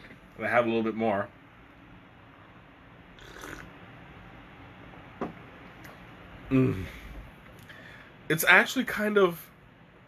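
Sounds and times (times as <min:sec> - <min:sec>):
person slurping tea: 0:03.2 - 0:03.7.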